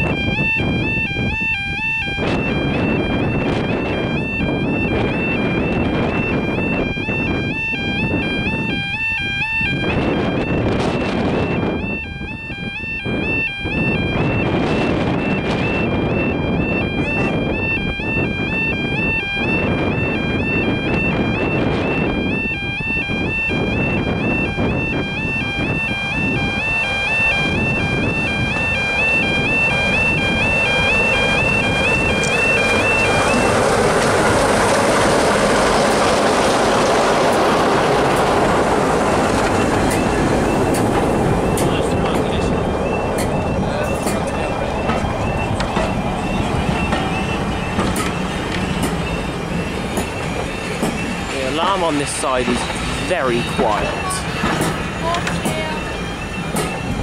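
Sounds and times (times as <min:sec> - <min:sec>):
diesel locomotive engine: 0:00.0 - 0:57.0
level crossing alarm warbling: 0:00.0 - 0:57.0.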